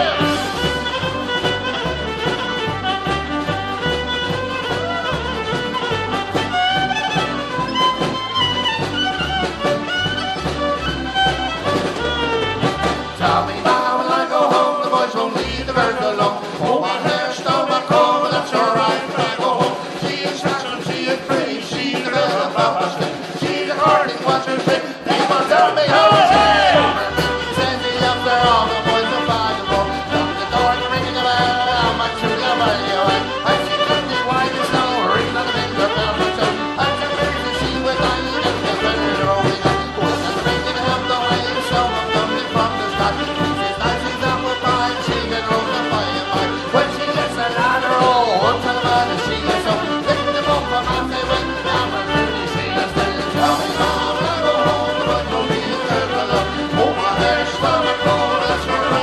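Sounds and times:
bass line: 0:00.0 - 0:14.6, 0:25.8 - 0:59.0
accordion: 0:00.0 - 0:59.0
fiddle: 0:00.0 - 0:59.0
folk band playing: 0:00.0 - 0:59.0.

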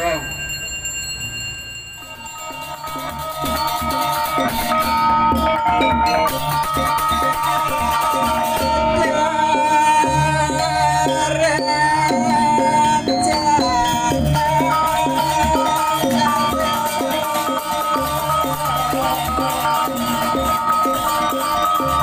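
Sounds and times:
bronze gong-chimes ringing: 0:00.0 - 0:09.2
cymbals: 0:02.0 - 0:22.0
hand drum: 0:02.1 - 0:22.0.

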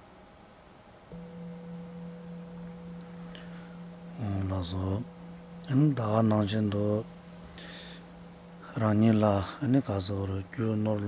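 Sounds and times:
singing bowl ringing: 0:01.1 - 0:11.0.

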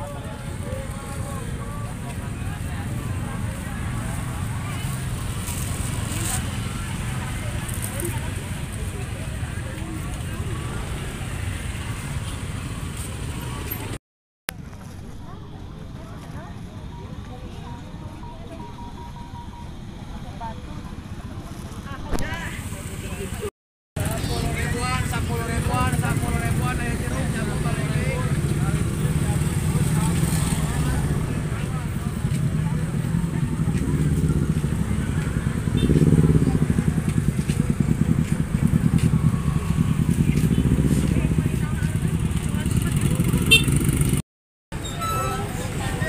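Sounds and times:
motor scooters riding past: 0:00.0 - 0:13.9, 0:21.3 - 0:44.2
people chattering: 0:00.0 - 0:14.0, 0:14.6 - 0:44.2, 0:44.8 - 0:46.0.

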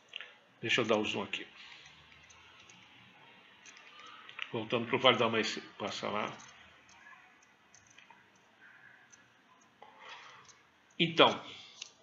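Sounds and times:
computer mouse clicks: 0:06.4 - 0:11.0.

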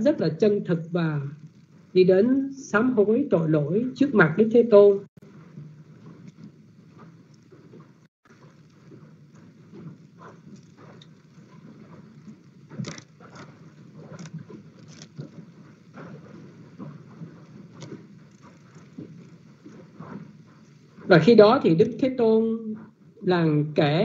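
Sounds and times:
open microphone background noise: 0:00.0 - 0:24.0.

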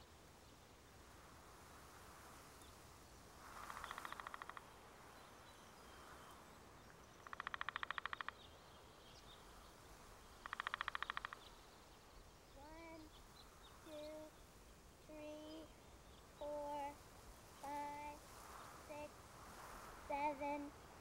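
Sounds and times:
faint outdoor ambience: 0:00.0 - 0:21.0
bird rattling trills: 0:03.6 - 0:04.7, 0:07.2 - 0:08.4, 0:10.4 - 0:11.6.

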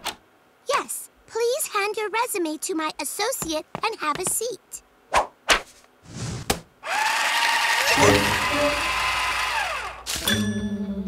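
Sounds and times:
paper shredder motor whine: 0:06.8 - 0:10.2.

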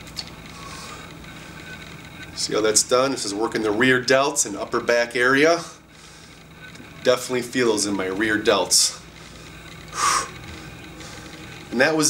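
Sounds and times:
low room noise: 0:00.0 - 0:12.0
man breathing out: 0:09.2 - 0:11.3.

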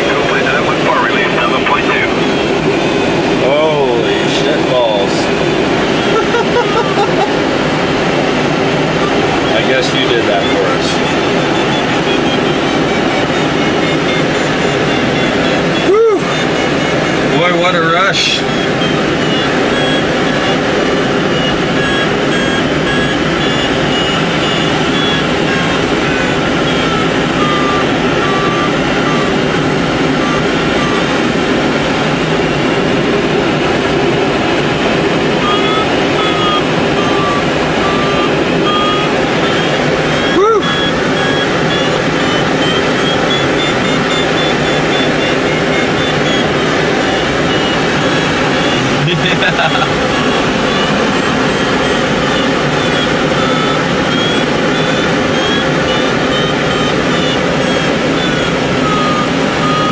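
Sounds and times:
rush of air in cockpit: 0:00.0 - 0:59.9
variometer beeping: 0:00.0 - 0:59.9.

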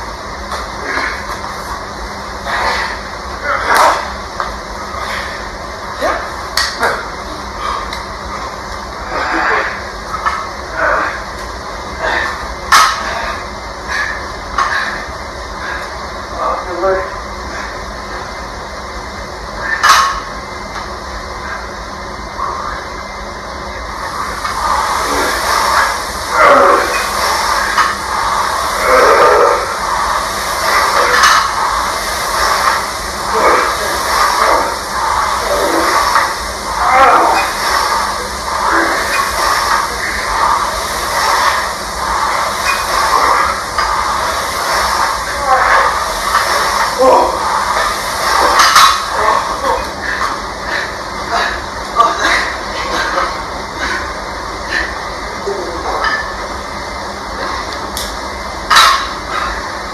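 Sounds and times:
men grunting with exertion: 0:24.6 - 0:50.3.

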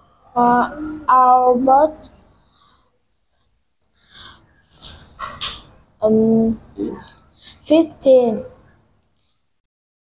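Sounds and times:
child whispering: 0:00.3 - 0:02.2.

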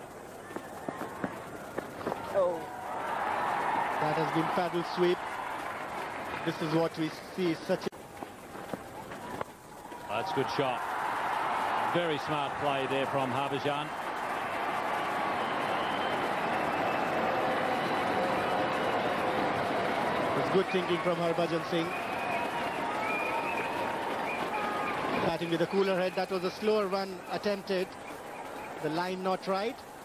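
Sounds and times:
stadium crowd murmur: 0:00.0 - 0:30.0.

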